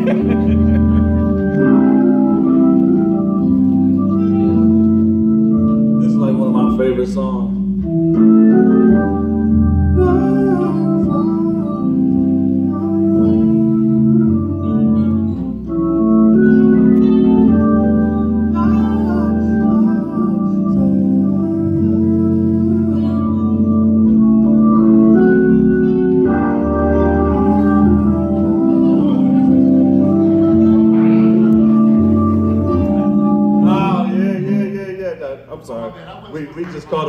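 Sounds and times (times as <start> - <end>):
organ playing gospel chords: 0.0 - 37.0.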